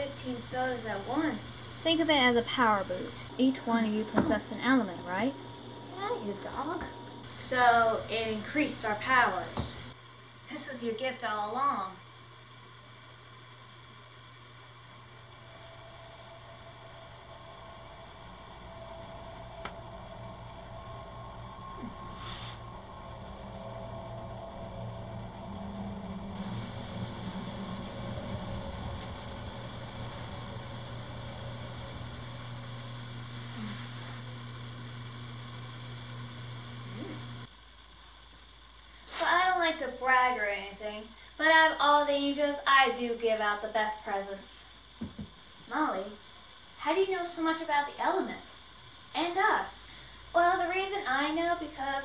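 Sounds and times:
low electrical hum with hiss: 0.0s - 52.0s.

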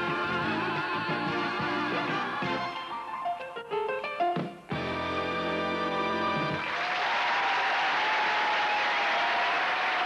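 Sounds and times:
audience applause: 6.5s - 10.0s.

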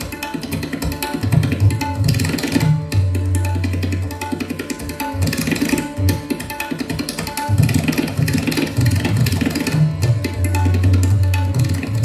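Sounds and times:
plucked sitar: 0.0s - 12.0s
rapid tabla strokes: 0.0s - 12.0s.

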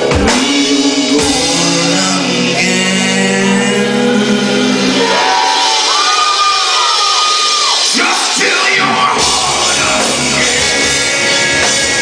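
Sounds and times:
crowd noise: 0.0s - 12.0s
live rock band: 0.0s - 12.0s.

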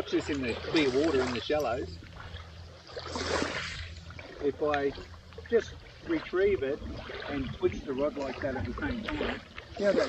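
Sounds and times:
seawater washing and splashing: 0.0s - 10.0s
steady low hum: 0.0s - 10.0s.

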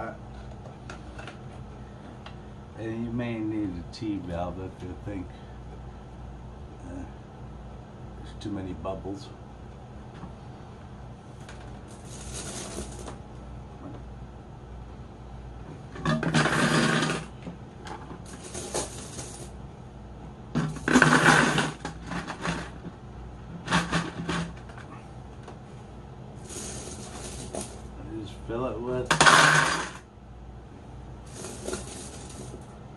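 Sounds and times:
steady low hum: 0.0s - 32.9s
plastic parts rustling and scraping: 11.4s - 13.2s, 16.0s - 19.5s, 20.6s - 22.9s, 23.6s - 24.9s, 26.4s - 27.9s, 31.3s - 32.7s.

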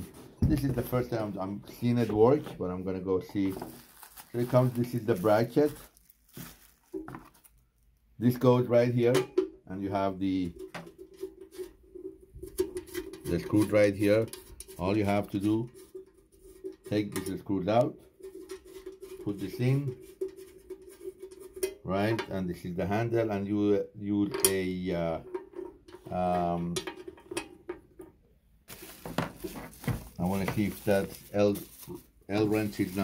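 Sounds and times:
soft rustle: 3.2s - 8.0s, 28.7s - 33.0s.

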